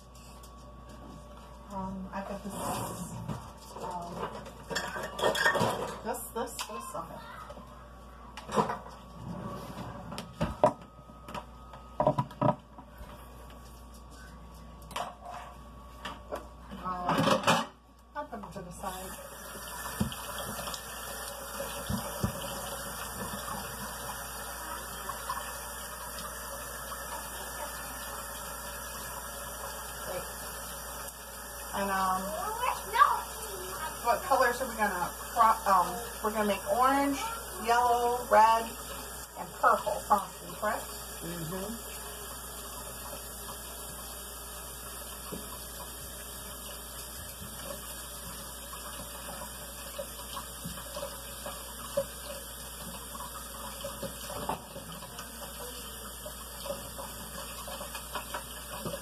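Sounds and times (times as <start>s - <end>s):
dishes and utensils clinking: 3.9s - 6.2s.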